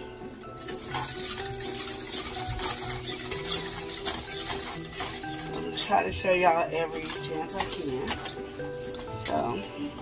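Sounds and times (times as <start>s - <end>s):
utensil scraping a metal pot: 0.0s - 9.6s
background music with held notes: 0.0s - 10.0s.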